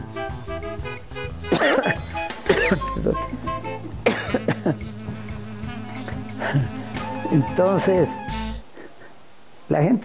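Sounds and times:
low background tone: 0:00.0 - 0:10.0
man laughing: 0:01.5 - 0:04.9, 0:06.0 - 0:09.2.

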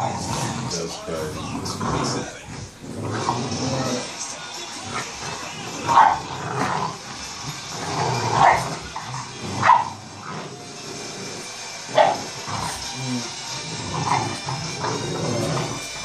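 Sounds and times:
puppies barking: 0:00.0 - 0:16.0.

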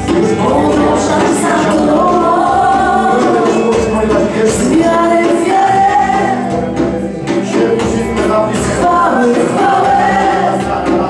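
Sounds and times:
group singing worship music: 0:00.0 - 0:11.0.

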